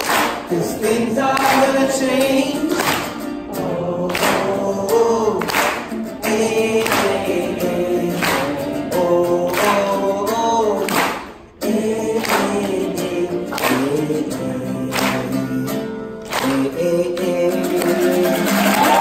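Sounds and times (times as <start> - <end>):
acoustic guitar strumming: 0.0 - 19.0
group of voices singing: 0.0 - 19.0
man singing: 0.0 - 19.0.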